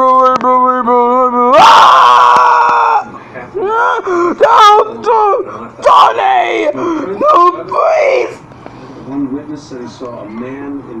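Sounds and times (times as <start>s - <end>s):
person screaming: 1.4s - 8.4s.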